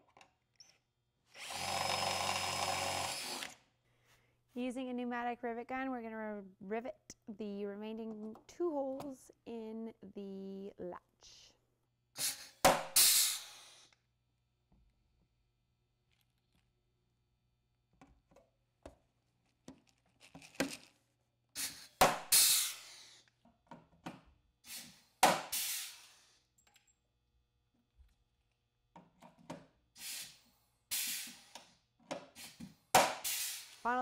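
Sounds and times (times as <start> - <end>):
rivet gun crack and air hiss: 12.2 - 14.0, 21.6 - 23.4, 24.7 - 26.4, 30.0 - 31.7, 32.4 - 33.8.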